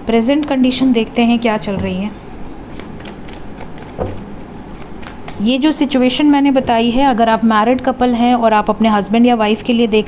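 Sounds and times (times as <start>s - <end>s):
cards being shuffled: 2.7s - 5.4s.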